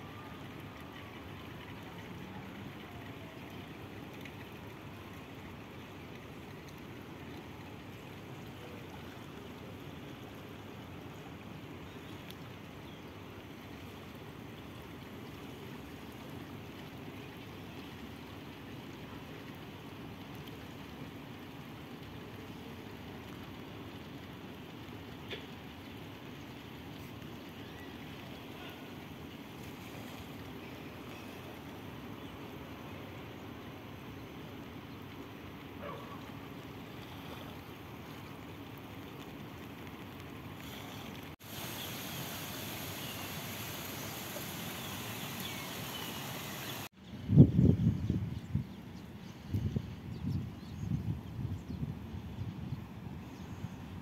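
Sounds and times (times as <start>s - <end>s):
river water rushing: 40.6s - 46.9s.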